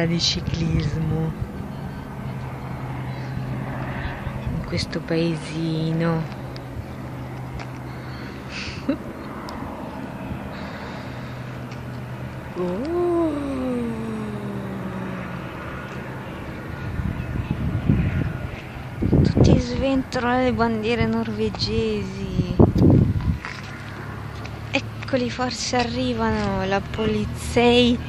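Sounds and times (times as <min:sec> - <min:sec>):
low engine hum: 0:00.0 - 0:28.0
rushing background noise: 0:00.0 - 0:28.0.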